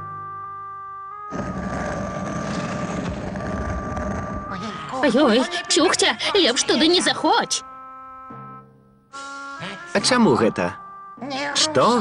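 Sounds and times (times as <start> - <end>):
dense fluttering noise effect: 1.3 - 4.6.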